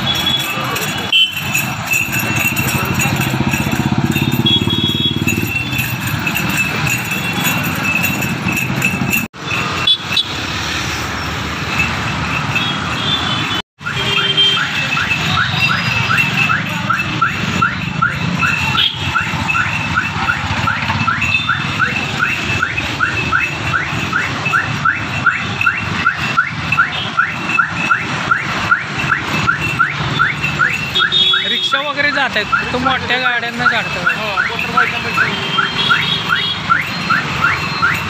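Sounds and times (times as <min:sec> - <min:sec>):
traffic noise: 0:00.0 - 0:38.0
vehicle engine running: 0:00.8 - 0:09.3.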